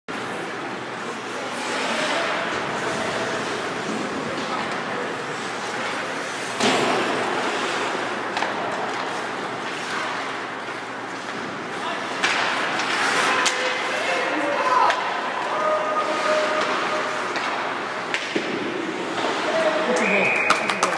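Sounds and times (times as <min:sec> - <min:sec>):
arena noise: 0:00.1 - 0:20.9
knocks against rink boards: 0:06.5 - 0:10.3, 0:11.1 - 0:14.1, 0:14.8 - 0:19.6.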